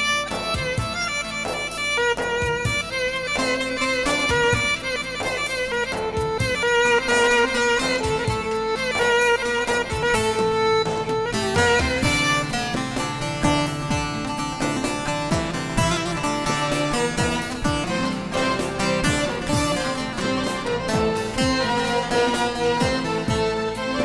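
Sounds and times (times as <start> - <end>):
plucked long-necked lute melody: 0.0 - 24.0.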